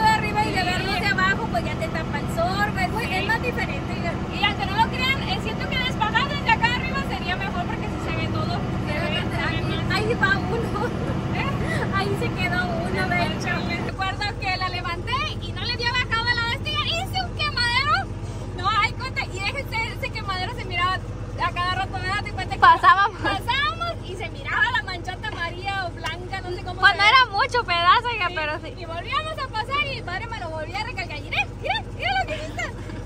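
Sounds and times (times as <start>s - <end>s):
woman talking: 0.0s - 32.9s
tractor engine running: 0.0s - 33.0s.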